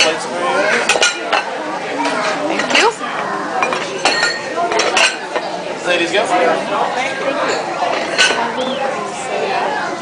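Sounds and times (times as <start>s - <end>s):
ceramic plates clinking: 0.0s - 3.0s, 3.6s - 5.5s, 7.0s - 8.7s
background chatter: 0.0s - 10.0s.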